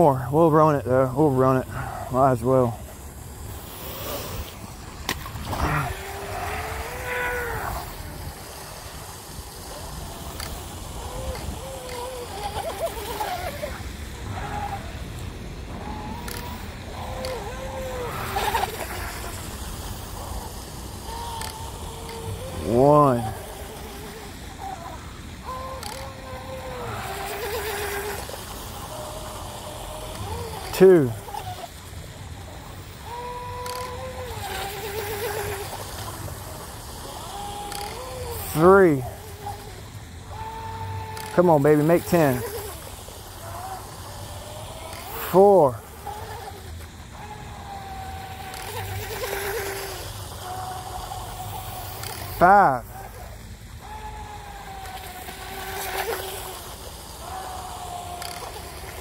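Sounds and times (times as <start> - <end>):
electric motor whining faintly: 0.0 - 59.0.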